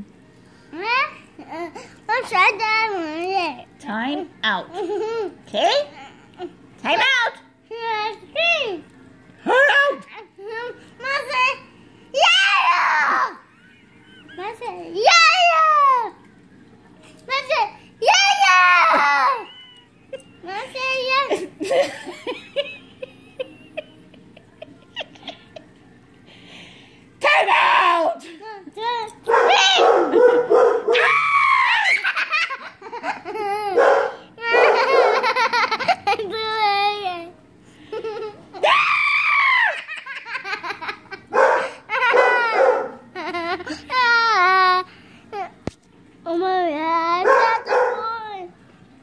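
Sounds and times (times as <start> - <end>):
child yelling: 12.2 - 13.4, 15.0 - 16.2
child laughing and shrieking: 12.2 - 13.7, 18.1 - 19.9, 31.0 - 32.5, 38.6 - 40.2.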